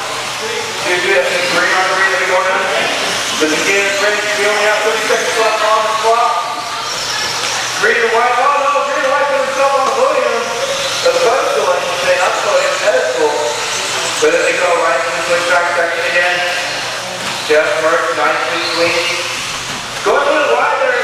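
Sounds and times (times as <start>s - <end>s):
rc car motor whine: 0.0s - 21.0s.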